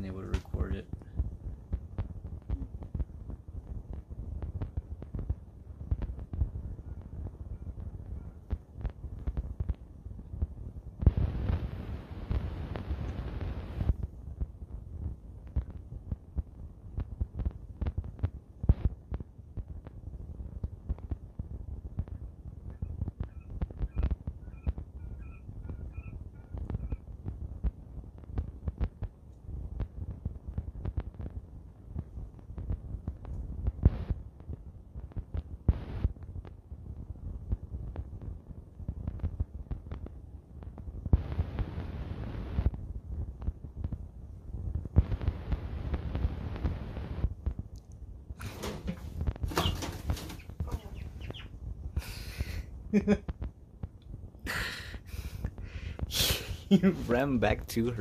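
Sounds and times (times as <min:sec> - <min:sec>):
bird wings flapping: 0:48.4 - 0:51.5.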